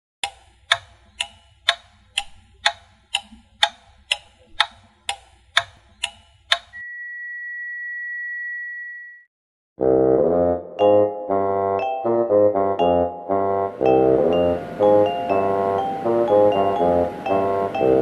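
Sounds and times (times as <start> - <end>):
clock ticking: 0.2 - 6.8.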